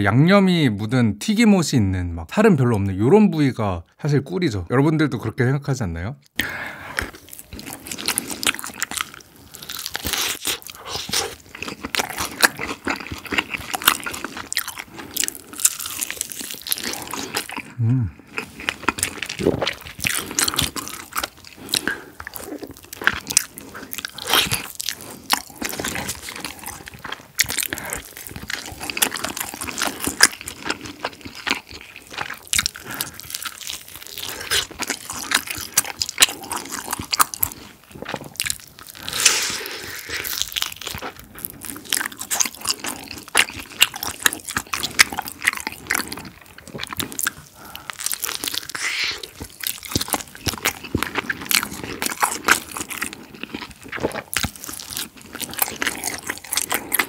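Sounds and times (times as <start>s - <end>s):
crunching and chewing fried chicken: 6.4s - 57.0s.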